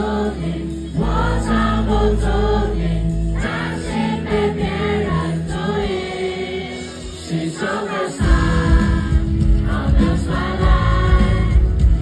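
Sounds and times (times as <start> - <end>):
live hip-hop music with vocals: 0.0 - 12.0.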